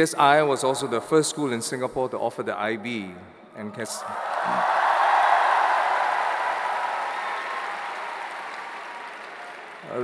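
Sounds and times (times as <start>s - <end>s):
audience applauding: 4.2s - 10.0s.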